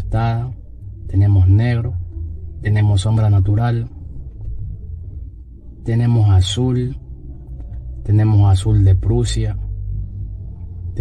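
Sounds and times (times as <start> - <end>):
man's voice: 0.0 - 4.0, 5.8 - 7.0, 8.0 - 9.7
low steady rumble: 0.0 - 11.0.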